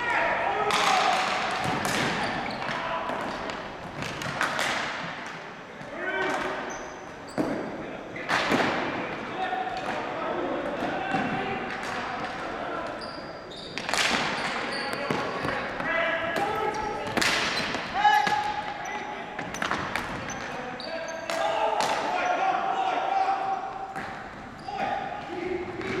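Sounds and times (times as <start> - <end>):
players shouting: 0.0 - 3.7, 8.6 - 26.0
ball and sticks clacking on floor: 0.7 - 5.4, 17.1 - 18.4, 19.4 - 20.6
sneakers squeaking: 1.6 - 4.3, 6.5 - 7.8, 12.5 - 22.4, 23.2 - 26.0.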